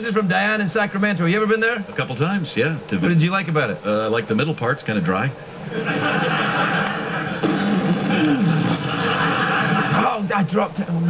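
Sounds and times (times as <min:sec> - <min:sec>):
studio audience laughing: 0:05.6 - 0:10.1.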